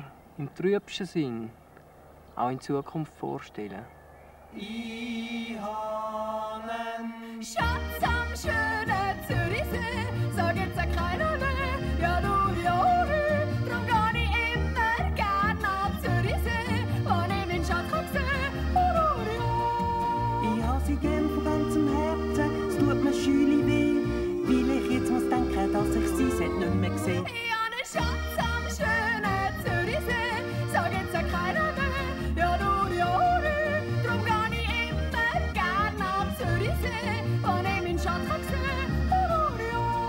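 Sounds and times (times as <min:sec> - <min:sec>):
woman yodeling: 0:07.5 - 0:40.0
acoustic guitar: 0:07.6 - 0:40.0
double bass: 0:07.7 - 0:27.3, 0:28.0 - 0:40.0
low instrumental accompaniment: 0:07.7 - 0:27.3.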